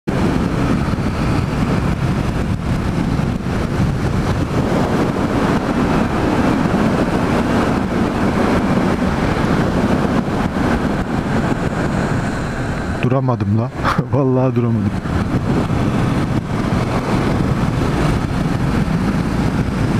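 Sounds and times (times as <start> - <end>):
wind and road rush: 0.0 - 19.9
motorcycle engine droning: 0.1 - 19.9.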